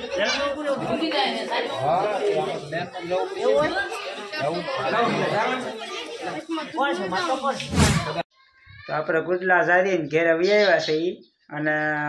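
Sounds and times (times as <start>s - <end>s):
people talking over one another: 0.0s - 11.1s.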